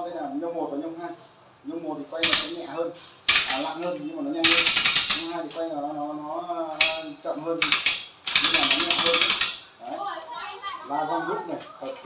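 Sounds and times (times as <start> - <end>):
winch ratchet clicking: 3.3 - 3.6, 4.4 - 5.3, 7.6 - 9.7.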